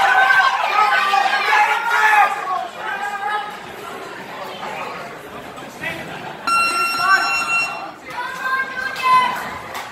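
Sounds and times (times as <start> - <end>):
voices: 0.0 - 9.9
round timer buzzer: 6.5 - 8.0.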